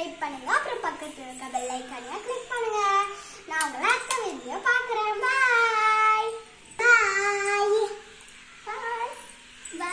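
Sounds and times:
girl singing a call: 0.0s - 9.9s.

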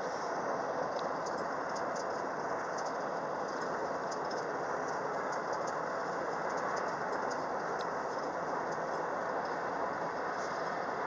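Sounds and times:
car road and engine noise: 0.0s - 11.0s
faint rattling ticks: 0.8s - 10.7s.

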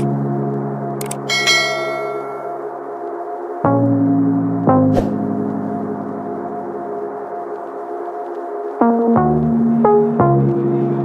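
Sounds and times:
low sustained chords: 0.0s - 11.0s
bright bell-like ding: 1.3s - 2.6s.

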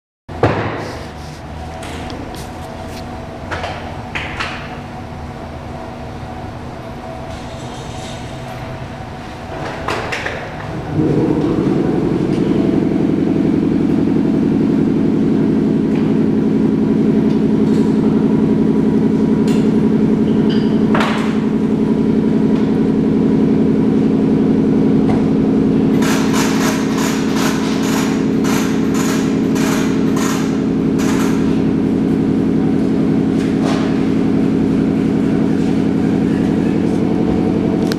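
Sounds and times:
spinning wheel hum: 10.3s - 37.9s.

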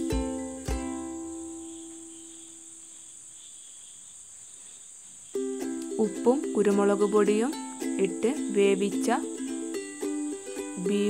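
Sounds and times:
background music: 0.0s - 1.6s
faint high-pitched hiss: 0.0s - 11.0s.

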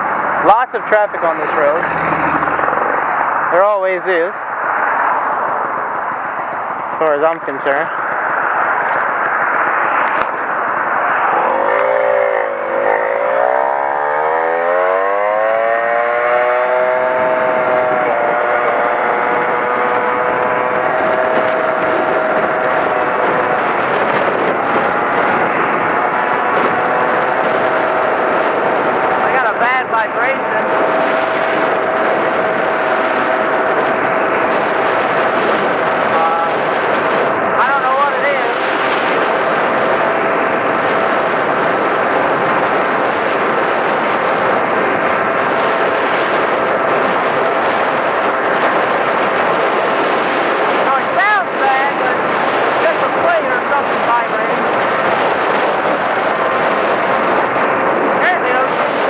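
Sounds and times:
moped engine accelerating: 0.0s - 59.0s
wind noise: 0.0s - 59.0s.

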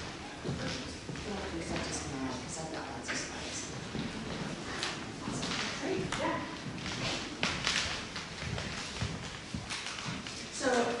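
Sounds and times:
rustling and handling noises: 0.0s - 11.0s.

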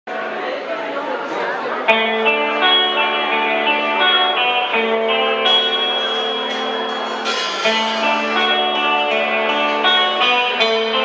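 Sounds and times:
crowd chattering in a hall: 0.1s - 11.0s
electric guitar chord: 1.9s - 11.0s.

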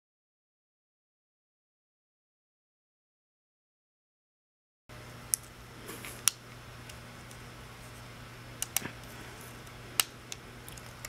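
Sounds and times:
low steady hum: 4.9s - 11.0s.

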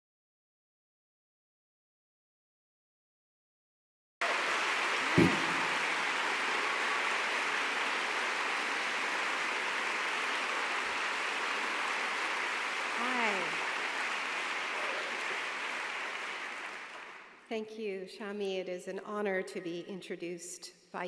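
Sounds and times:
audience applauding: 4.2s - 17.5s.

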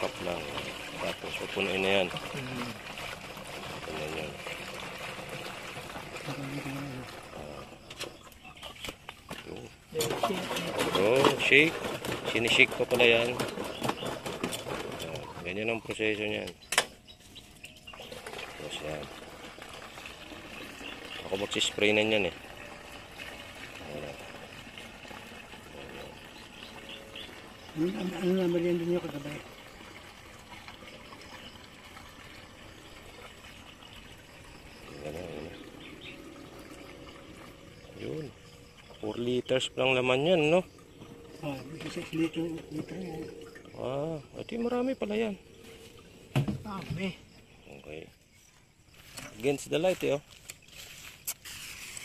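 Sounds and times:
water pouring into a tank: 0.0s - 16.6s, 17.9s - 48.1s.

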